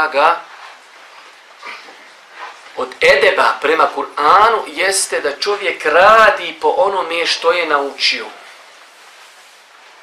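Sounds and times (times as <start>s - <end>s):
room hiss: 0.0s - 10.0s
man speaking: 2.8s - 8.4s.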